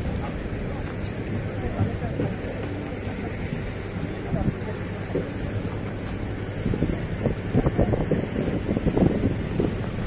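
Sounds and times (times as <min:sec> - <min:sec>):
truck engine rumbling: 0:00.0 - 0:10.0.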